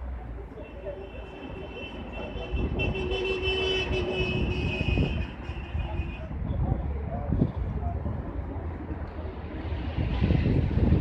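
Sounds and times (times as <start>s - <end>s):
low street rumble: 0.0s - 11.0s.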